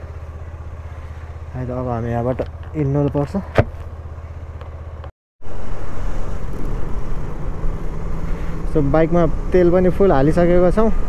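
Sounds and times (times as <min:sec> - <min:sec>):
motorcycle engine running: 0:00.0 - 0:11.0
wind noise: 0:05.4 - 0:10.2.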